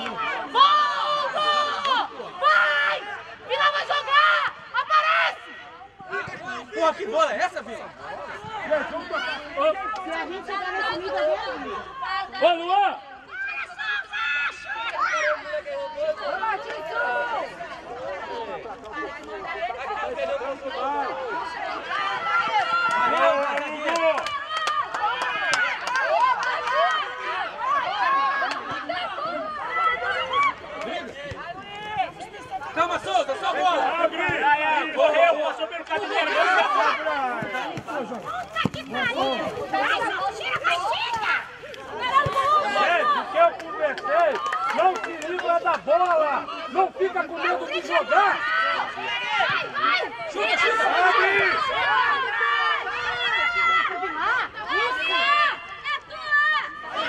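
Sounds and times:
people shouting outdoors: 0.0s - 57.0s.

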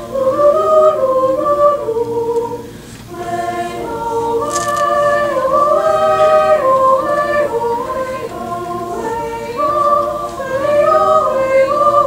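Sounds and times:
choir singing sustained chords: 0.0s - 12.0s
sibilant hiss of singers: 0.0s - 12.0s.

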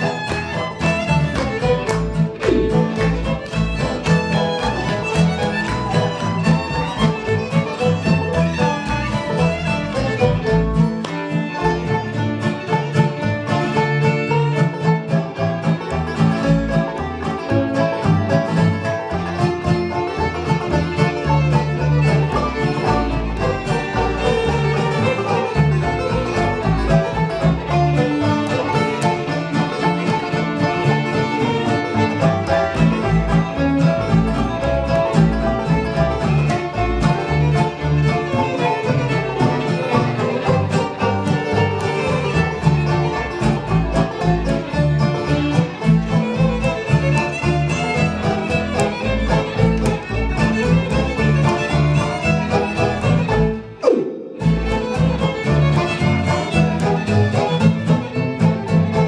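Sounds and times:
fiddle melody: 0.0s - 59.0s
picked banjo: 0.0s - 59.0s
plucked upright bass: 0.0s - 59.0s
strummed acoustic guitar: 0.0s - 59.0s.

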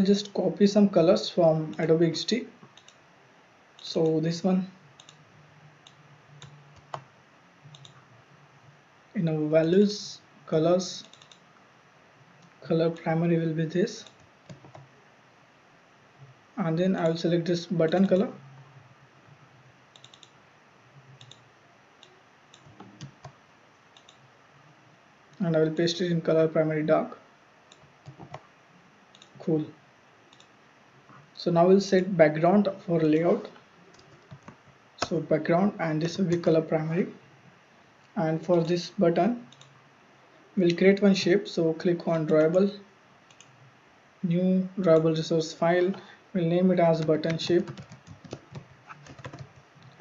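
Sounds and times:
computer mouse clicks: 2.6s - 3.0s, 5.0s - 5.2s, 7.7s - 8.0s, 11.0s - 11.5s, 14.0s - 14.9s, 19.9s - 20.4s, 21.1s - 24.3s, 27.7s - 28.5s, 29.1s - 29.5s, 30.3s - 30.5s, 39.5s - 39.8s, 43.3s - 43.6s
keyboard clicks: 2.7s - 3.0s, 5.0s - 5.2s, 7.7s - 8.0s, 11.0s - 11.4s, 14.0s - 14.9s, 19.9s - 20.4s, 21.2s - 21.4s, 22.0s - 24.2s, 27.7s - 28.5s, 29.1s - 29.5s, 33.9s - 35.2s, 47.2s - 50.0s.

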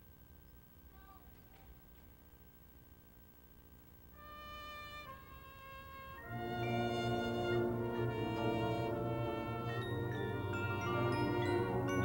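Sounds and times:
brass section chord: 4.2s - 12.0s
sustained bugle notes: 4.2s - 12.0s.

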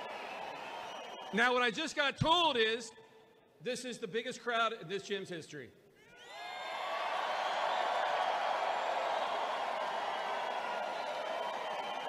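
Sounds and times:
whoops: 0.0s - 1.4s, 6.0s - 12.0s
crowd cheering: 0.0s - 1.6s, 6.1s - 12.0s.

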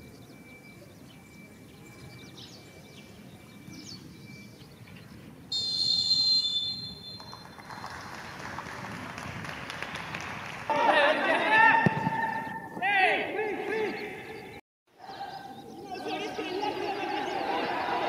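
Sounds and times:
referee's whistle: 5.5s - 7.5s.

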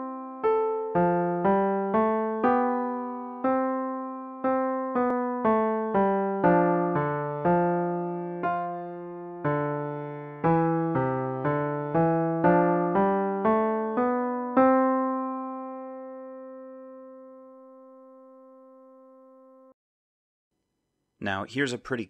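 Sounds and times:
piano counterpoint: 0.0s - 19.8s.

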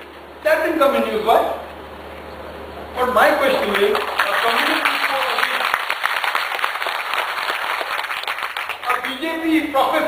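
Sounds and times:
audience applauding: 3.6s - 9.2s.

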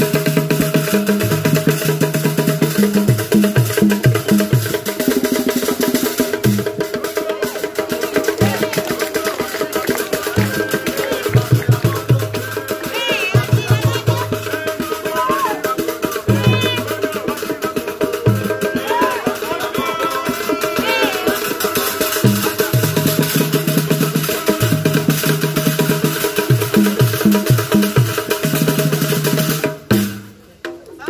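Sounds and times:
hand drums playing: 0.0s - 31.0s
high gliding calls: 4.0s - 22.9s.

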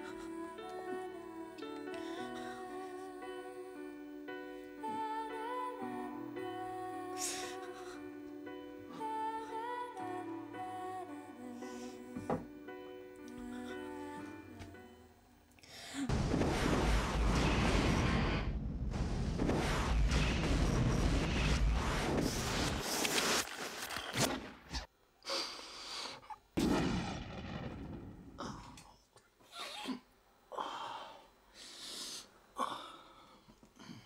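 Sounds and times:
soft music: 0.0s - 16.1s.

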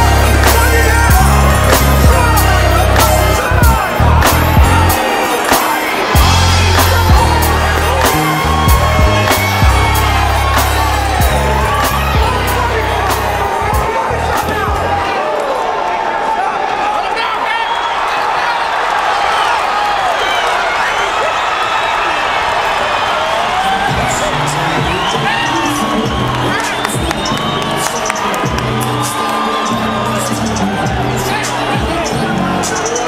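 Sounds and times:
music with bass beat: 0.0s - 15.0s, 29.8s - 33.0s
crowd cheering and shouting: 0.0s - 33.0s.

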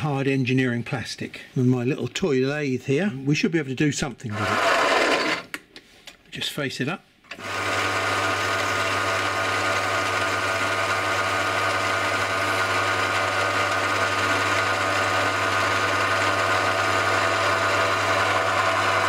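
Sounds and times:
lathe humming and whining: 4.4s - 5.4s, 7.4s - 19.0s
tool cutting plastic: 4.4s - 5.6s.

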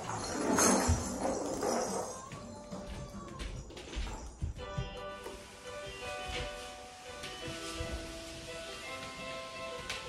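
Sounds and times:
rustling: 0.0s - 10.0s.

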